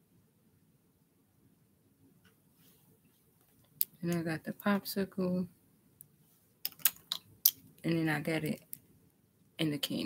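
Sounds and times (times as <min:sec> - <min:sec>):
person speaking: 0:03.8 - 0:05.5, 0:07.8 - 0:08.8, 0:09.6 - 0:10.0.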